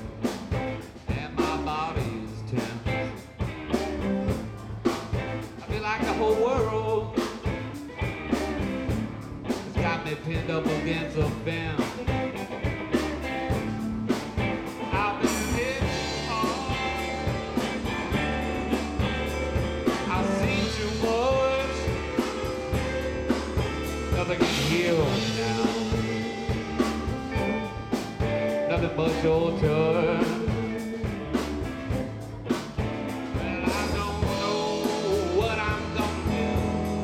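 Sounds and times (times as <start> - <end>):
electric bass: 0.0 - 37.0
electric guitars: 0.0 - 37.0
steady drum beat: 0.0 - 37.0.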